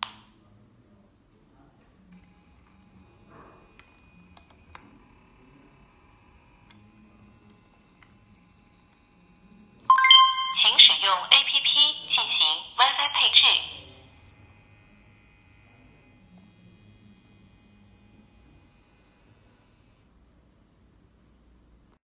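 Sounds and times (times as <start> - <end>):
short electronic beep: 9.9 - 10.8
spoken voice prompt: 9.9 - 13.9.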